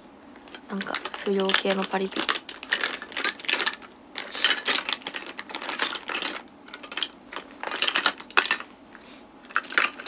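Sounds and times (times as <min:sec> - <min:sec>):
small hard objects clicking: 0:00.5 - 0:08.7, 0:09.5 - 0:10.0.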